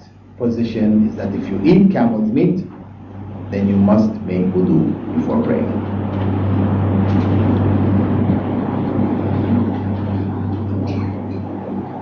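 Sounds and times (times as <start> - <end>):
low hum: 0.0 - 12.0
loud rushing noise: 1.0 - 12.0.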